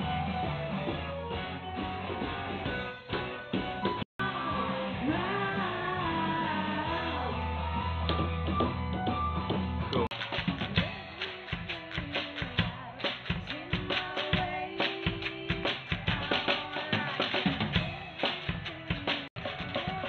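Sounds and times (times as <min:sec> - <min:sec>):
woman singing: 0:04.2 - 0:07.7, 0:10.8 - 0:20.0.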